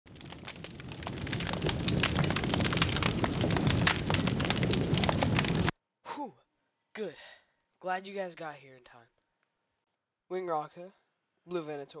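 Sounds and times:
dense crackle of small clicks: 0.0s - 5.7s
low rumble: 0.1s - 5.7s.

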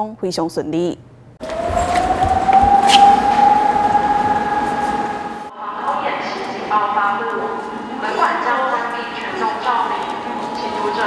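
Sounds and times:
people walking footsteps: 1.4s - 5.4s.

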